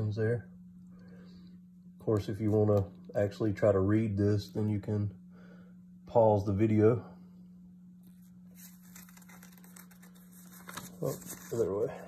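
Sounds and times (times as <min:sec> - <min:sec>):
steady low hum: 0:00.0 - 0:12.0
paper booklet rustling: 0:08.0 - 0:12.0.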